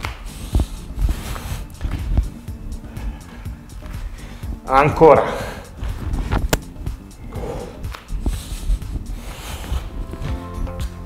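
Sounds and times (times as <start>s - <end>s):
background music: 0.0s - 11.0s
man breathing hard: 0.2s - 4.6s, 5.2s - 6.3s, 7.0s - 10.4s.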